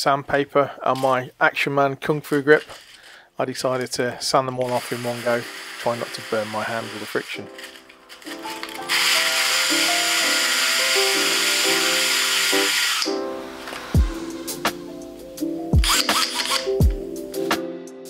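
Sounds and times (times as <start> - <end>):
cordless drill whirring: 4.6 - 14.0, 15.8 - 16.8
background music: 4.7 - 18.0.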